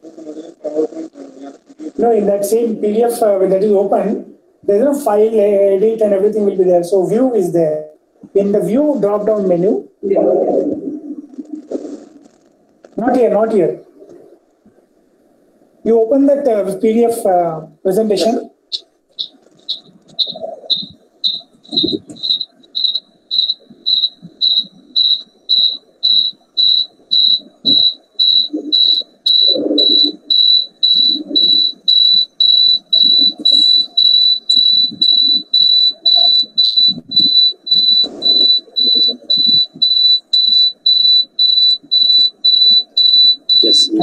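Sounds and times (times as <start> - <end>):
high-pitched beeping: 18.7 - 44.0.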